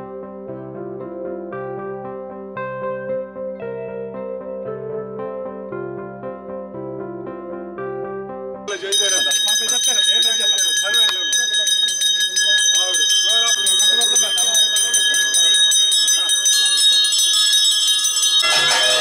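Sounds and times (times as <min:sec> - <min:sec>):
metal bells jingling: 0:08.7 - 0:19.0
crowd voices: 0:12.9 - 0:19.0.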